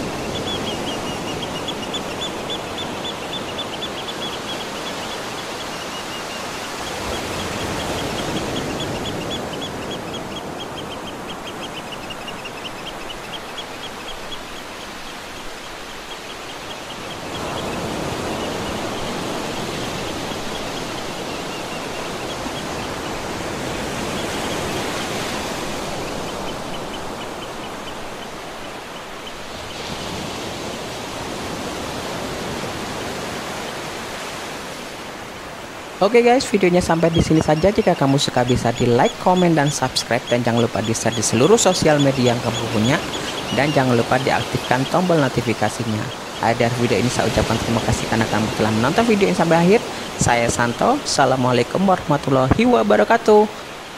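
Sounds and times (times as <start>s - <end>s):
rapid high chirping: 0.0s - 19.2s, 36.8s - 46.7s
sea surf breaking on beach: 0.0s - 53.9s.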